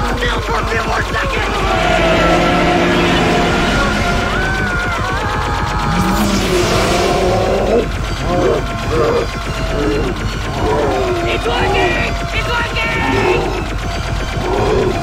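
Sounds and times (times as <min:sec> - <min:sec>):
dramatic music: 0:00.0 - 0:15.0
voices shouting: 0:00.6 - 0:15.0
energy beam weapon blast: 0:01.4 - 0:09.6.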